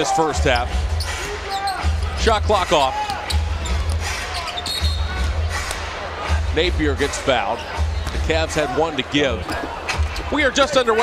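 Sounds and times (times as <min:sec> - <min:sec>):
low pulsing arena music: 0:00.0 - 0:11.0
shoe squeak: 0:00.5 - 0:05.2.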